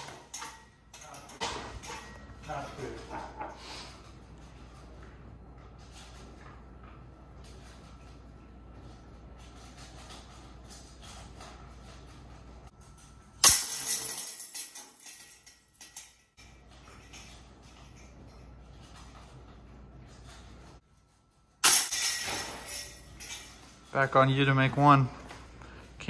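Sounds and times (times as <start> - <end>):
disc striking basket chains: 12.8 - 24.4.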